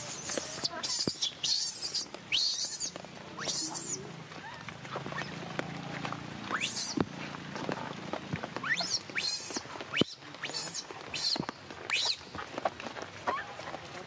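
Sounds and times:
baby monkey screaming: 0.0 - 4.0, 6.6 - 7.0.

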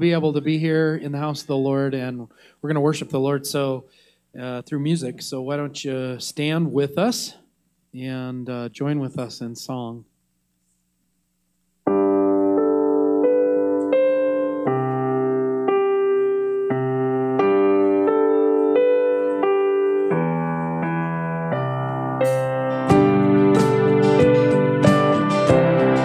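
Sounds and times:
electric piano chords: 11.9 - 26.0.

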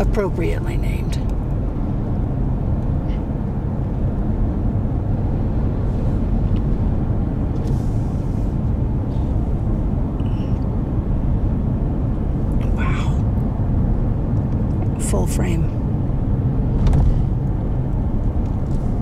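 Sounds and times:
car cabin road rumble: 0.0 - 19.0.

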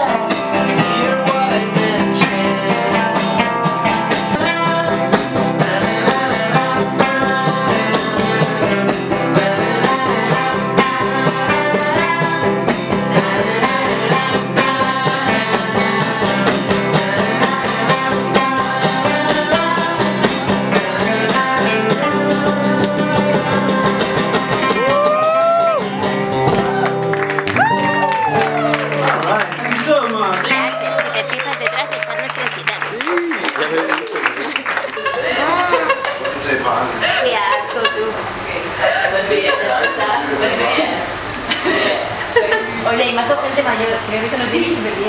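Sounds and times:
person singing: 0.0 - 25.8
band with acoustic guitars: 0.0 - 45.0.

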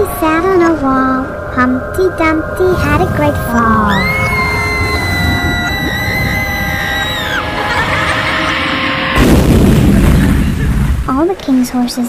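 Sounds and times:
dark horror soundtrack music: 0.0 - 11.1
high wailing note: 1.2 - 9.4
crash-like explosion effect: 2.6 - 11.2.

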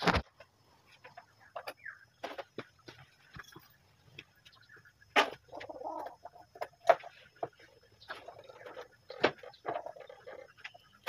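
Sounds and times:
chicken clucking: 4.6 - 7.5.

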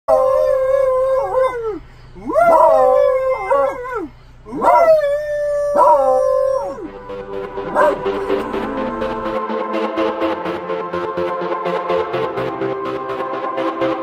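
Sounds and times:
dog howling: 0.1 - 6.9, 7.6 - 9.4
man howling: 0.1 - 7.0, 7.6 - 9.4.

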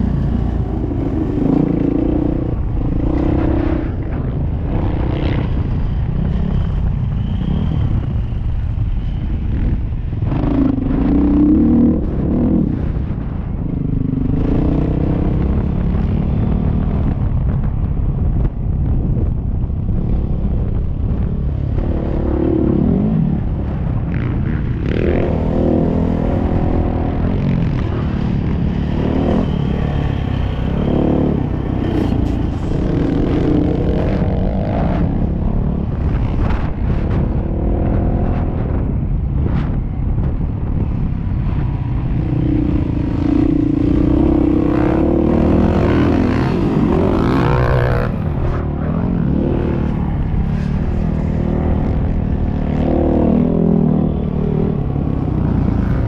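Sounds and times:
wind rumble: 0.0 - 56.0
dirt bike engine revving: 42.5 - 54.0.

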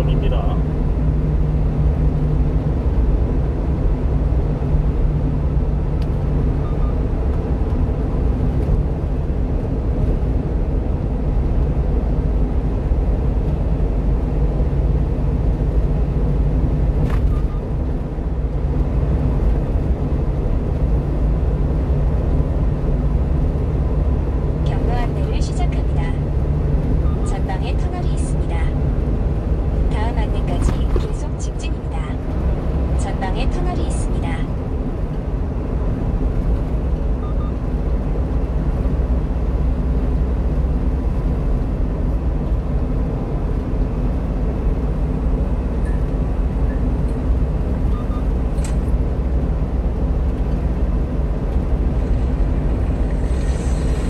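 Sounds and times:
truck engine and road rumble: 0.0 - 54.0.

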